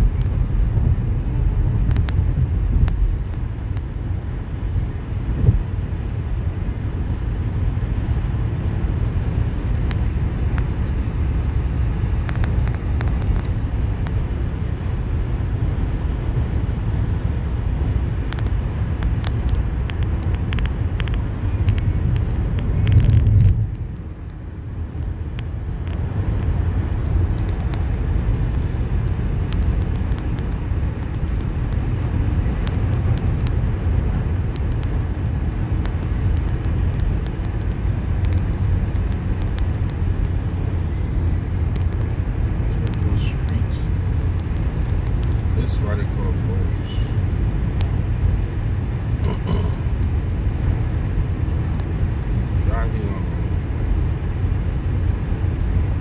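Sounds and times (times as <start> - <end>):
car road noise at highway speed: 0.0 - 56.0.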